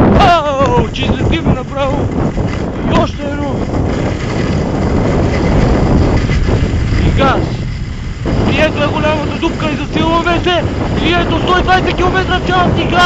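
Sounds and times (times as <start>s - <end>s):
wind rushing over microphone: 0.0s - 13.0s
skis scraping on snow: 0.4s - 13.0s.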